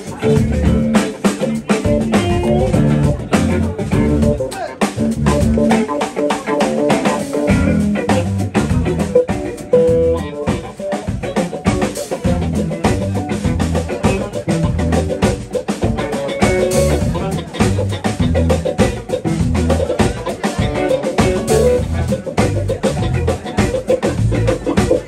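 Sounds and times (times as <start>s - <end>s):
drum kit beat: 0.0s - 25.0s
electric bass: 0.0s - 25.0s
electric guitars: 0.0s - 25.0s.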